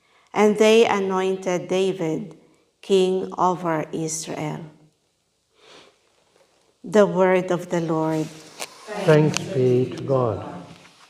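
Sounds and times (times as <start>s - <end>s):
person breathing in through nose: 5.6s - 6.0s.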